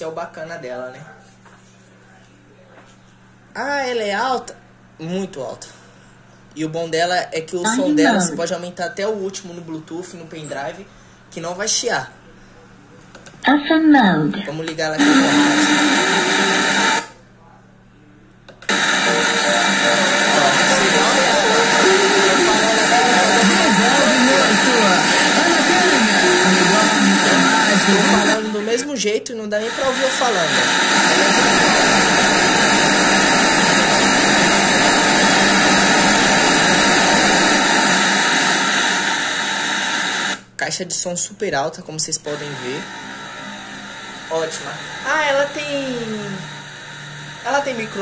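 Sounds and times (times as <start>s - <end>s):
faint low electrical hum: 0.0s - 30.5s.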